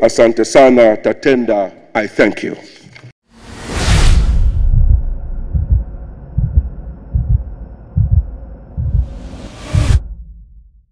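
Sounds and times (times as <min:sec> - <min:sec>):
deep heartbeat-like thumps: 0:04.0 - 0:10.9
faint hum: 0:04.8 - 0:09.4.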